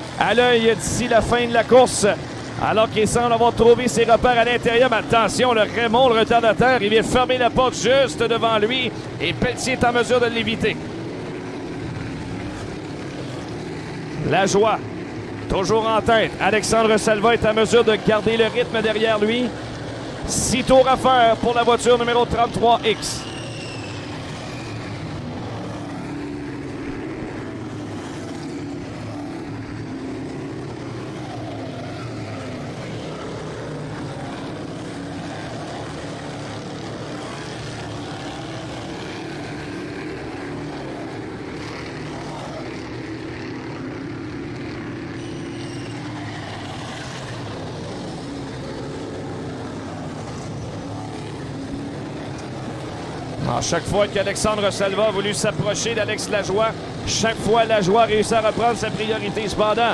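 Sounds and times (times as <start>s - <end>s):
race car engines droning: 0.0s - 59.9s.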